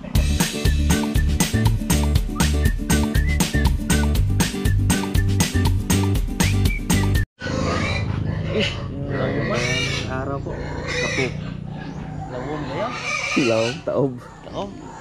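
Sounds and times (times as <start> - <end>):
music: 0.0 - 7.3
voices: 8.4 - 15.0.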